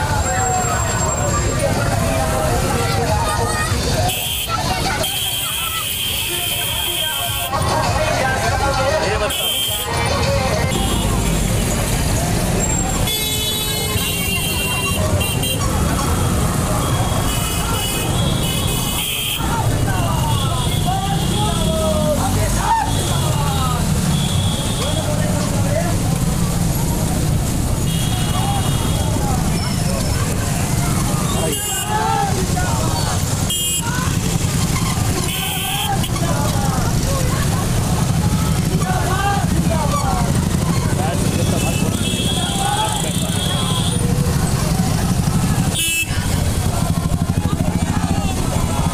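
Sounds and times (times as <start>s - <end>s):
people calling out: 0.0s - 11.7s, 12.5s - 48.9s
motorcycle engines running: 0.0s - 48.9s
horns beeping: 9.1s - 21.7s, 32.9s - 36.3s.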